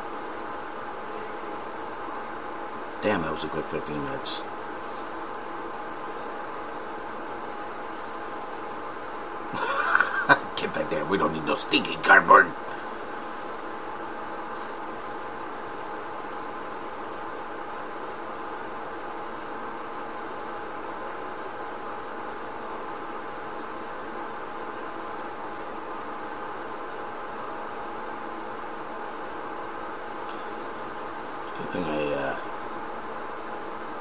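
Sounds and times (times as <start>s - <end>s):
faint high whine: 0.0s - 18.4s, 29.9s - 34.0s
steady hum with hiss: 0.0s - 34.0s.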